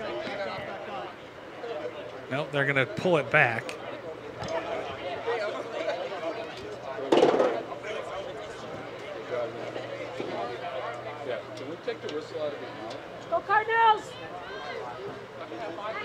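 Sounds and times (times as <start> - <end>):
voices calling and chattering: 0.0 - 16.0.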